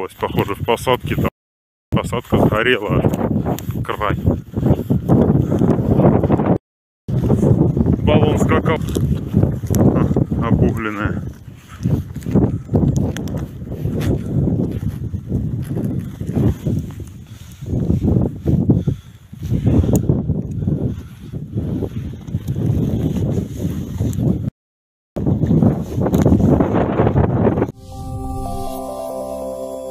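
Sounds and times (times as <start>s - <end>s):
wind buffeting microphone: 2.0s - 24.5s, 25.2s - 27.8s
footsteps through snow: 10.8s - 17.6s
soft music jingle: 27.8s - 29.9s.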